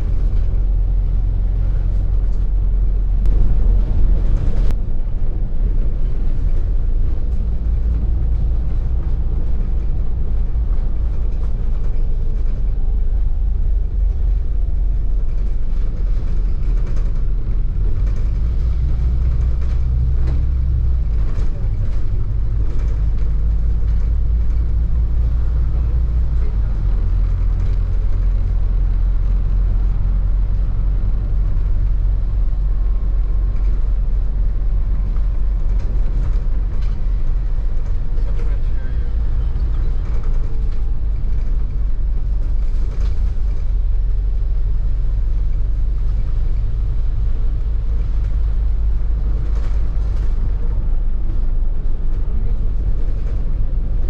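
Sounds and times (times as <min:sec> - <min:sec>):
bus engine and road rumble: 0:00.0 - 0:54.0
wind buffeting microphone: 0:00.0 - 0:54.0.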